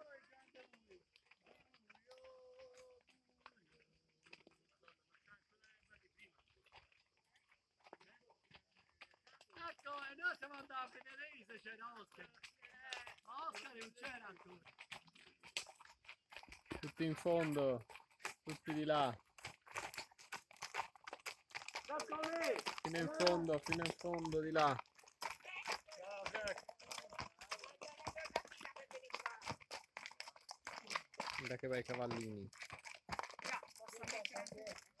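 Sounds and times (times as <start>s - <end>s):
crunching noises: 0.1s - 35.0s
indistinct voices talking: 21.8s - 29.6s
person speaking: 21.9s - 24.8s.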